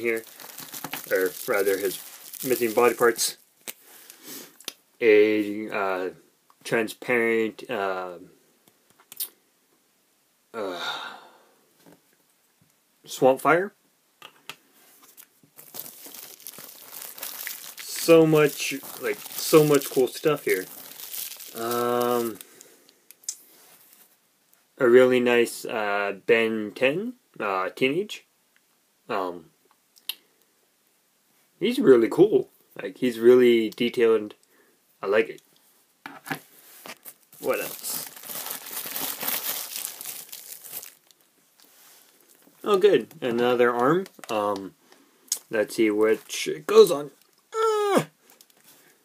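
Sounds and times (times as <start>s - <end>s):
plastic packaging crinkling: 0.0s - 4.2s, 15.1s - 22.7s, 36.8s - 44.7s.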